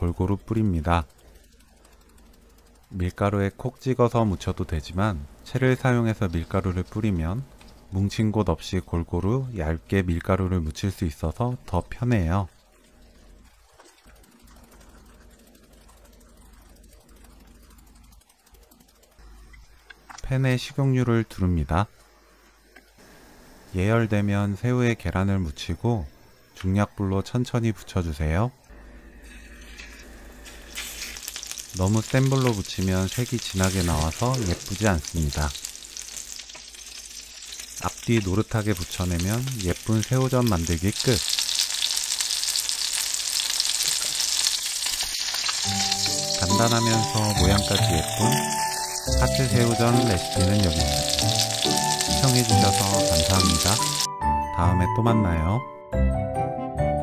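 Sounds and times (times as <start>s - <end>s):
sieve ticking while shaken: 0.0s - 8.3s, 11.1s - 19.2s, 31.2s - 54.1s
oil sizzling in a pan: 29.3s - 54.1s.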